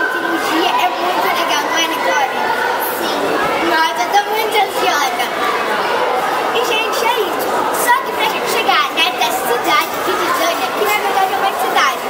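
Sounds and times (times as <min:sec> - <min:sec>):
crowd chatter echoing: 0:00.0 - 0:12.0
girl talking into microphone: 0:06.5 - 0:12.0.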